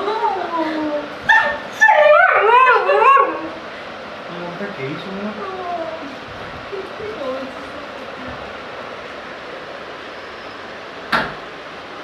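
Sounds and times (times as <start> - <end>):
dog howling: 1.3 - 3.6.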